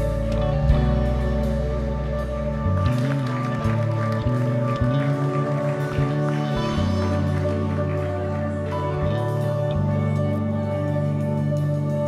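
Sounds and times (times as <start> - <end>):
bass notes: 0.0 - 12.0
keyboard chords: 0.0 - 12.0.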